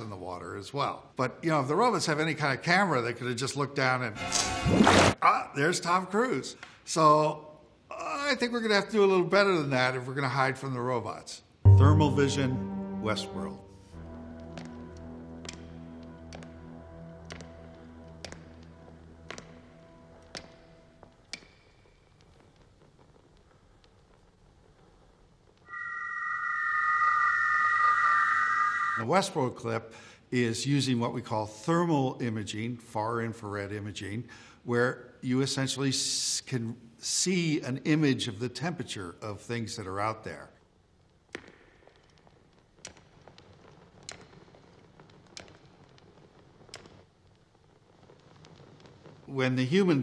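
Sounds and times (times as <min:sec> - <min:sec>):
synthesized electronic tone: 0:11.7 - 0:13.8.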